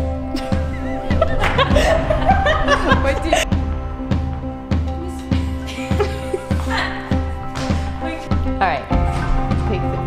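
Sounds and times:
background music with steady beat: 0.0s - 10.0s
woman laughing: 0.3s - 3.6s, 5.3s - 7.2s.

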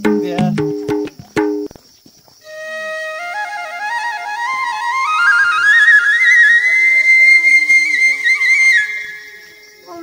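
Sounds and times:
flute music with trills: 2.4s - 10.0s.

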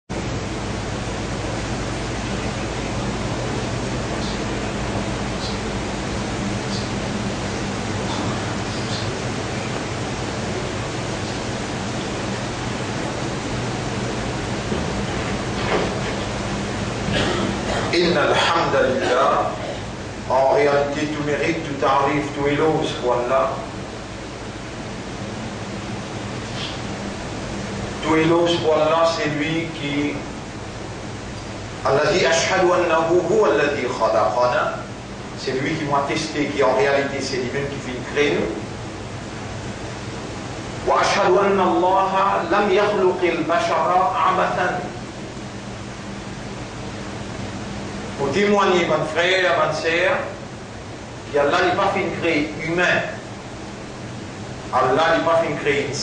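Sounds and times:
faint low hum: 0.1s - 56.0s
steady background hiss: 0.1s - 56.0s.

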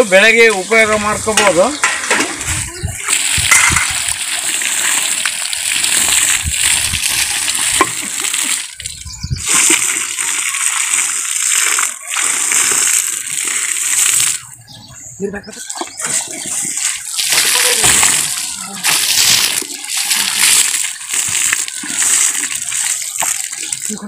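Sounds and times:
water splashing onto compost: 0.0s - 14.6s, 15.6s - 24.0s.

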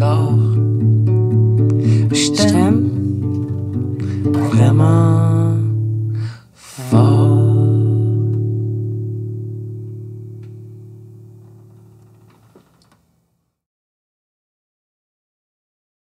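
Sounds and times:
acoustic guitar chords strummed: 0.0s - 12.5s.

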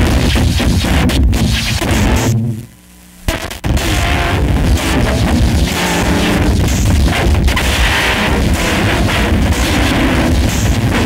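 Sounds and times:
distorted noise music: 0.0s - 11.0s.

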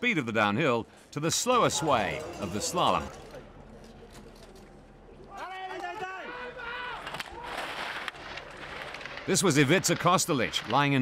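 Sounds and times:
skis scraping over hard snow: 7.4s - 11.0s.

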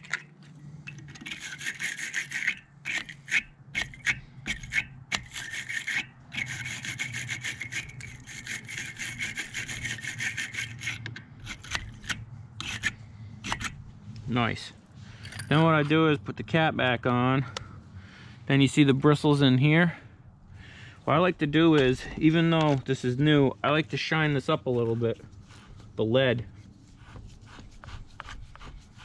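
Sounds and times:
wire brush scraping metal: 0.0s - 14.2s.

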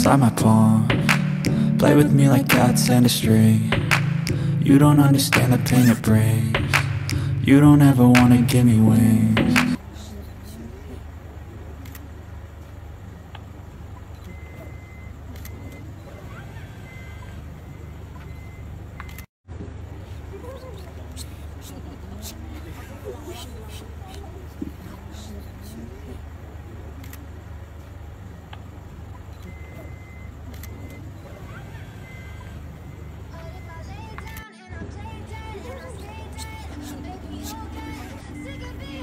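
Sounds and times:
people talking: 0.0s - 3.8s, 4.6s - 12.2s, 20.0s - 27.4s, 33.3s - 39.0s
van engine idling: 0.0s - 19.1s, 34.8s - 39.0s.

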